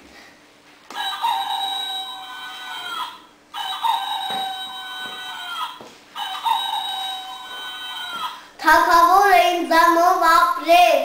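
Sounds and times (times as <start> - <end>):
toy rooster crowing: 0.9 - 8.4.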